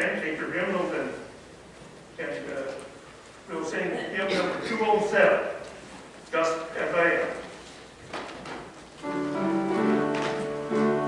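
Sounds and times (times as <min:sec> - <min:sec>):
man speaking: 0:00.0 - 0:01.3, 0:02.2 - 0:02.9, 0:03.5 - 0:05.7, 0:06.3 - 0:07.4.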